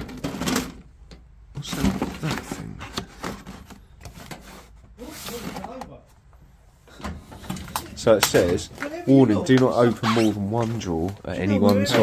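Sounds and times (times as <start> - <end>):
papers and folders rustling: 0.0 - 12.0.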